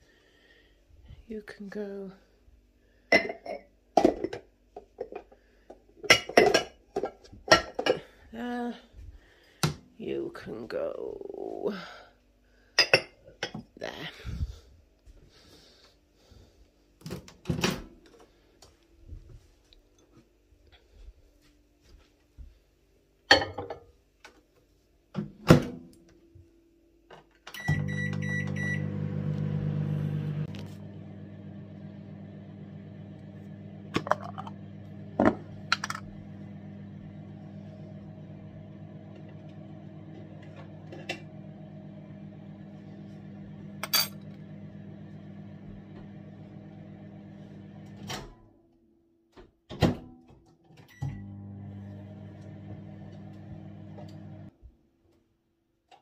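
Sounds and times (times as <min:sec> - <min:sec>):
microwave electrical hum: 0:25.2 - 0:48.5, 0:50.8 - 0:54.5.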